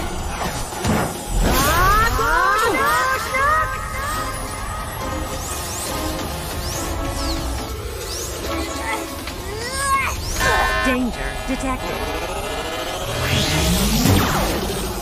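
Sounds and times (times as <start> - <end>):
cartoon action music: 0.0 - 15.0.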